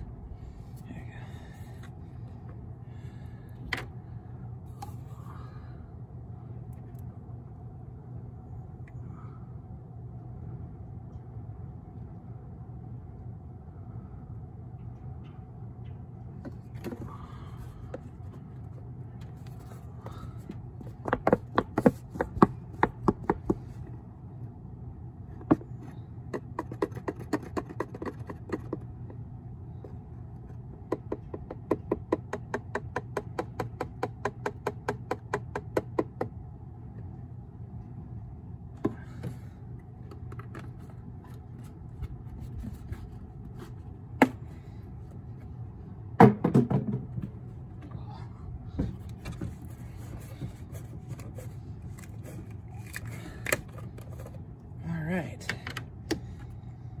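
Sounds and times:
low steady hum: 0:00.0 - 0:57.0.

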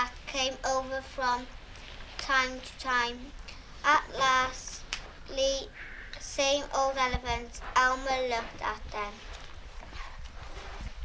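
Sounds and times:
background hiss: 0:00.0 - 0:11.0
book page turning rustle: 0:01.7 - 0:02.4, 0:08.4 - 0:11.0.

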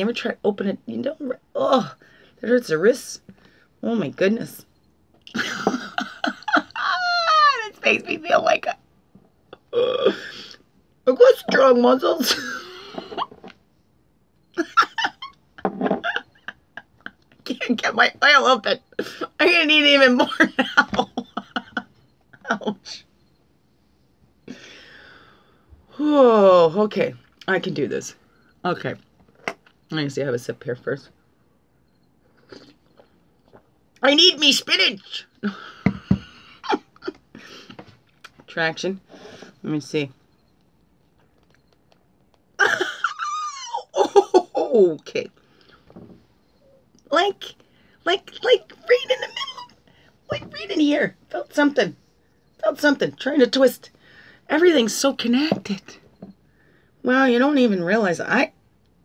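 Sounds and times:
woman laughing in bursts: 0:05.4 - 0:07.1, 0:42.6 - 0:44.6.

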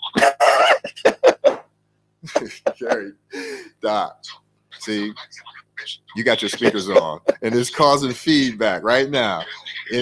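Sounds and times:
man laughing: 0:00.1 - 0:03.7, 0:06.2 - 0:07.7, 0:09.2 - 0:10.0.

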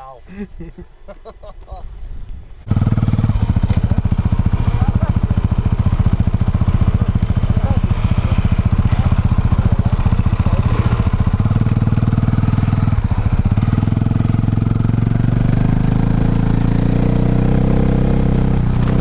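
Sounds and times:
motorcycle engine idling and revving: 0:02.6 - 0:19.0.

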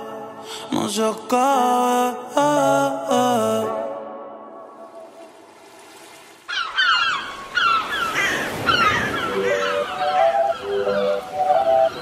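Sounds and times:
synth melody: 0:09.1 - 0:12.0.

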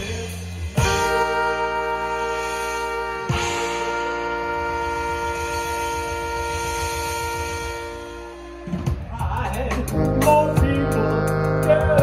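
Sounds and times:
live band playing: 0:00.0 - 0:12.0
brass holding a chord: 0:00.7 - 0:09.1, 0:09.9 - 0:12.0.

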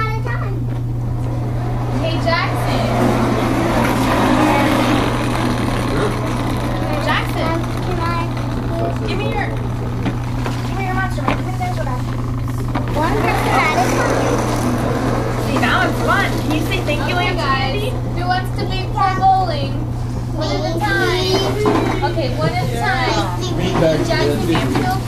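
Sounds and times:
steady low hum: 0:00.0 - 0:25.0
chatter of children and adults: 0:01.6 - 0:25.0.

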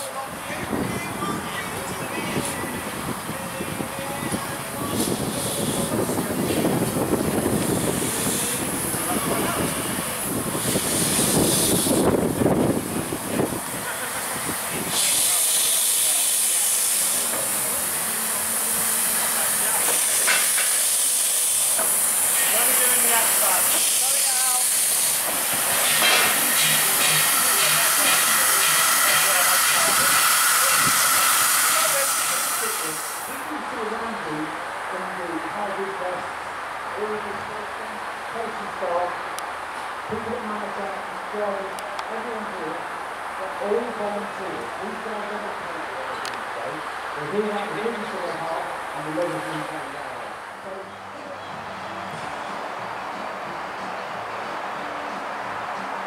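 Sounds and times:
steam locomotive moving slowly: 0:00.0 - 0:34.2
loud hiss of escaping steam: 0:04.8 - 0:33.5.

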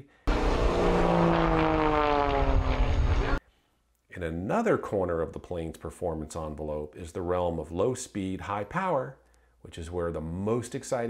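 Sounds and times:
propeller airplane flying past: 0:00.3 - 0:03.4.

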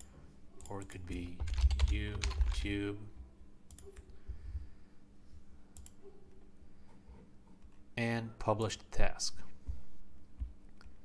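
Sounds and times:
computer mouse clicking: 0:05.8 - 0:06.0.

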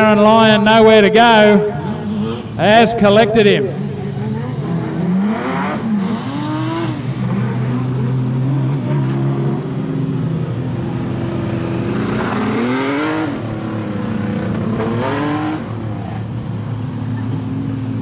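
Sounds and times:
race car engines revving: 0:00.0 - 0:18.0.

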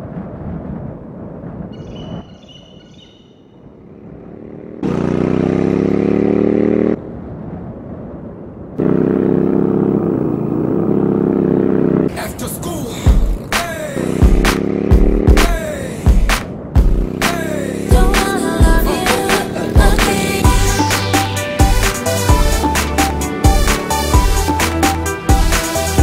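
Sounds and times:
wind noise: 0:00.0 - 0:04.3, 0:07.0 - 0:10.8
motorcycle engine revving: 0:03.8 - 0:07.0, 0:08.8 - 0:12.3, 0:13.1 - 0:26.0.

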